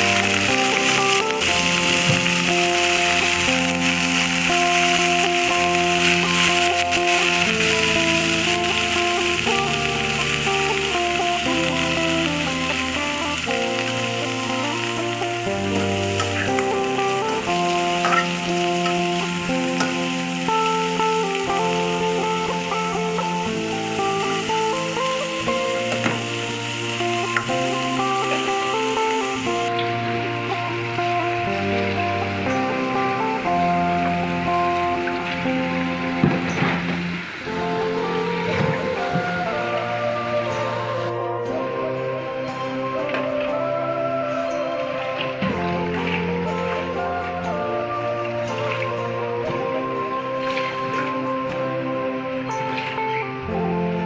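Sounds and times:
prawns sizzling in hot oil: 0:00.0 - 0:41.1
background music: 0:00.0 - 0:54.0.

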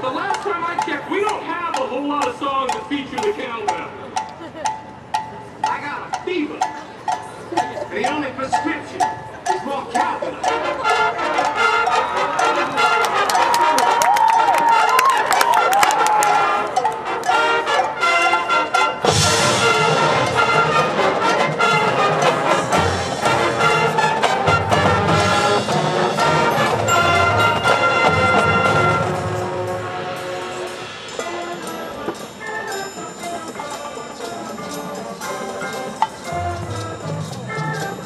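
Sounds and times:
marching band playing: 0:00.0 - 0:38.0.

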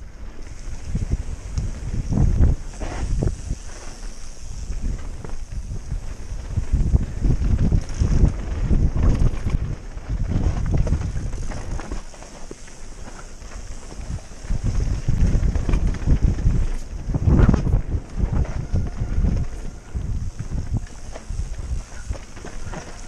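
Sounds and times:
wind buffeting microphone: 0:00.0 - 0:23.0
bike knocks and rattles: 0:04.6 - 0:19.5.

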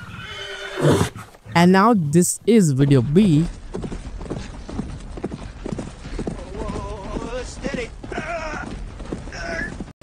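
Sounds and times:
horse hoofbeats galloping: 0:02.9 - 0:10.0.

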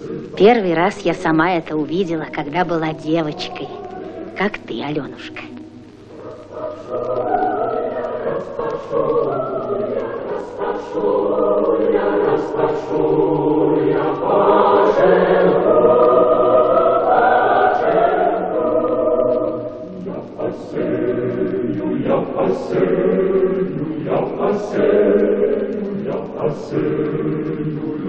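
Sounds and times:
choir singing long notes: 0:00.0 - 0:28.0.

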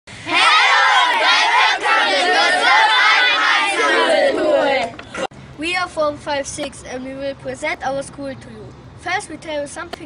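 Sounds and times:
children shouting in chorus: 0:00.3 - 0:04.9.

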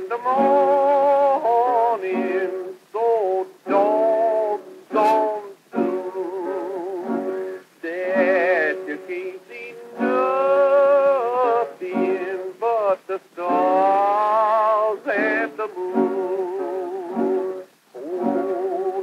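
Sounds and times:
guitar accompaniment: 0:00.0 - 0:19.0
old record wordless melody: 0:00.0 - 0:19.0.

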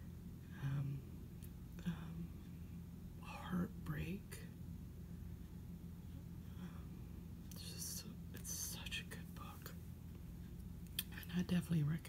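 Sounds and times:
low steady hum: 0:00.0 - 0:12.0
woman whispering: 0:00.5 - 0:01.1, 0:01.7 - 0:02.5, 0:03.2 - 0:04.5, 0:07.5 - 0:09.8, 0:11.0 - 0:12.0.

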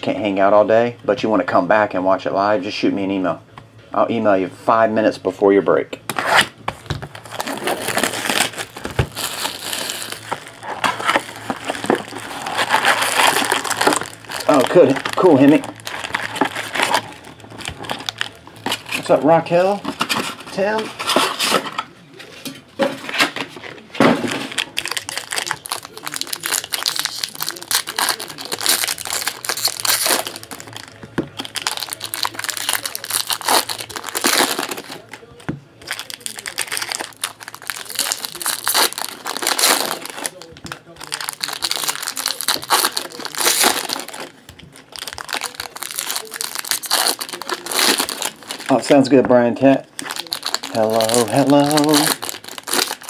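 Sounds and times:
foil wrappers crinkling and tearing: 0:06.1 - 0:53.0.

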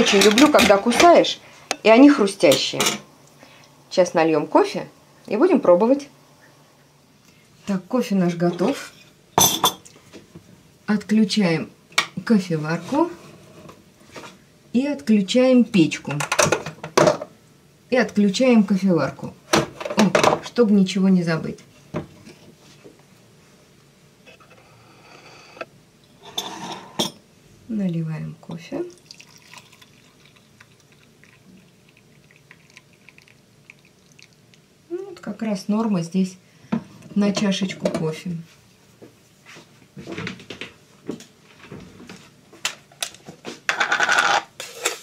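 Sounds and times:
kitchenware clinking: 0:00.0 - 0:01.9, 0:08.5 - 0:09.9, 0:26.2 - 0:27.2
coffee pouring into mug: 0:28.9 - 0:34.6.

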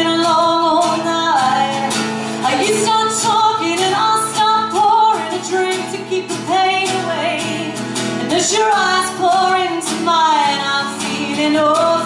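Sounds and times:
song with sung vocals: 0:00.0 - 0:12.0.

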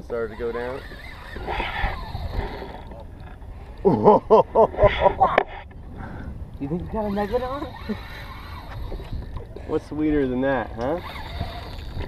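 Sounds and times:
man laughing: 0:03.8 - 0:05.4.

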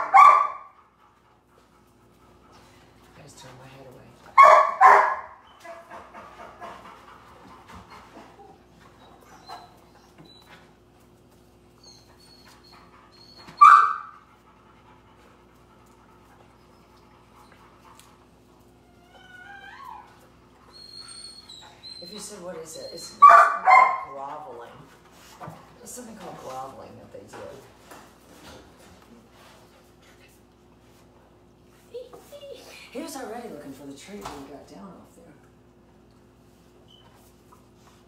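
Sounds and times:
puppy barking: 0:00.0 - 0:00.8, 0:04.4 - 0:05.9, 0:13.6 - 0:14.2, 0:23.2 - 0:24.1
puppy whining: 0:07.6 - 0:10.9, 0:11.7 - 0:14.2, 0:16.5 - 0:23.4
puppy yipping: 0:08.4 - 0:10.5, 0:11.8 - 0:14.1.

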